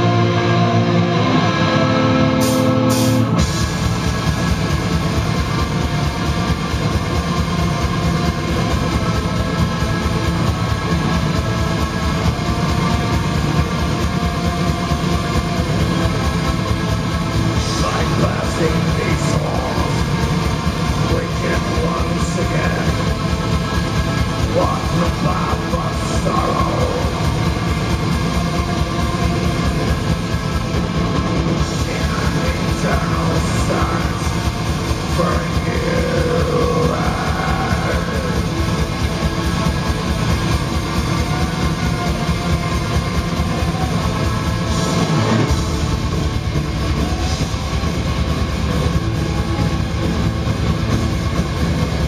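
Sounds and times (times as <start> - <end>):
distorted electric guitars: 0.0 - 52.0
keyboards: 0.0 - 52.0
fast dense drumming: 2.4 - 52.0.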